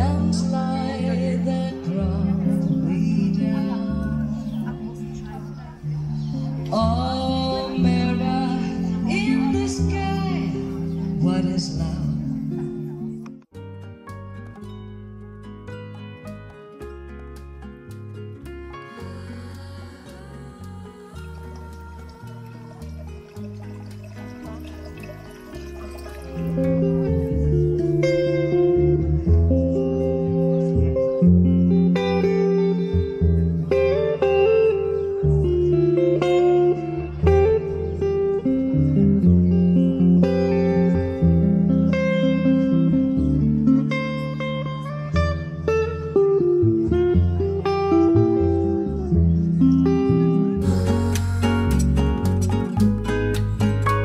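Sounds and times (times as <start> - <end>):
electric guitar: 0.0 - 54.0
plucked double bass: 14.1 - 54.0.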